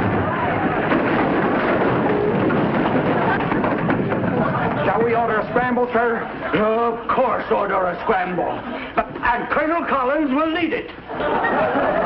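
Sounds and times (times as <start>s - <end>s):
audience laughter: 6.0s - 9.3s, 11.0s - 12.0s.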